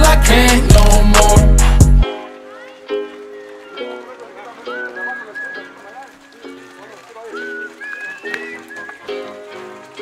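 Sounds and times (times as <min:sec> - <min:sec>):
music with held chords: 0:00.0 - 0:04.8
background voices: 0:00.0 - 0:10.0.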